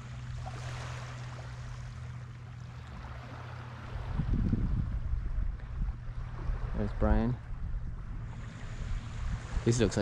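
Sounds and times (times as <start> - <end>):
light breeze: 0.0 - 10.0
small waves lapping on shore: 0.0 - 10.0
wind rumble on microphone: 0.0 - 10.0.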